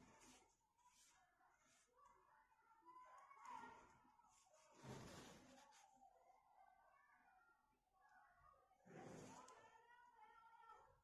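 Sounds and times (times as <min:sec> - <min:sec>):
rustle of yarn and fabric: 0:00.0 - 0:02.2, 0:03.4 - 0:06.1.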